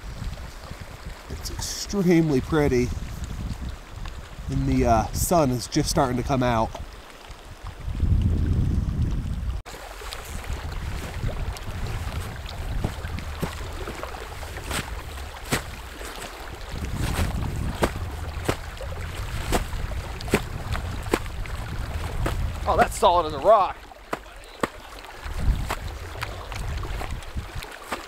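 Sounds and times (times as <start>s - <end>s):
wind rumble on microphone: 0.0s - 23.4s, 25.1s - 28.0s
snowshoes crunching in snow: 9.8s - 23.0s, 24.1s - 28.0s.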